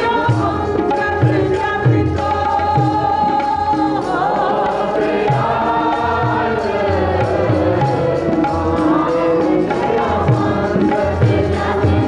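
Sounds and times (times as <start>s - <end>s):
harmonium: 0.0s - 12.0s
tabla strokes: 0.0s - 12.0s
voices singing in unison: 0.0s - 12.0s.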